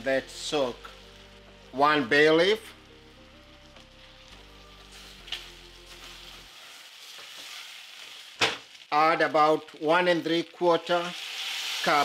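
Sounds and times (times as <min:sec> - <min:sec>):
soft background music: 0:00.0 - 0:08.3
rice and onions sizzling in oil: 0:00.0 - 0:12.0.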